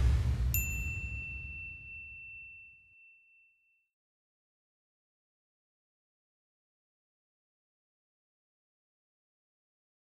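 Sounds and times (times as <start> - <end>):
low rumbling whoosh: 0.0 - 2.0
bright bell-like ding: 0.5 - 3.9.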